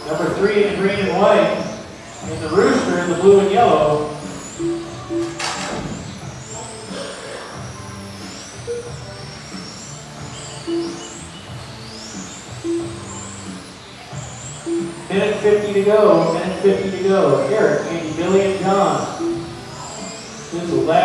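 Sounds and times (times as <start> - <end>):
background music: 0.0 - 7.4
electric motors whining: 0.0 - 21.0.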